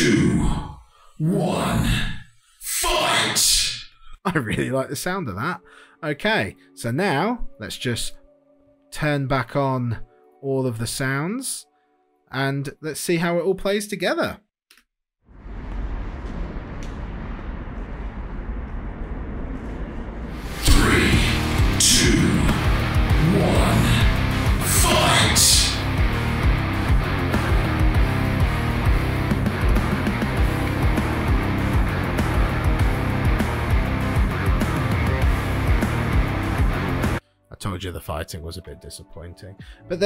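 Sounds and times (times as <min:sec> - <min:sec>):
hard-hitting music track: 0:20.3 - 0:37.8
reverberant voice counting down: 0:20.6 - 0:26.1.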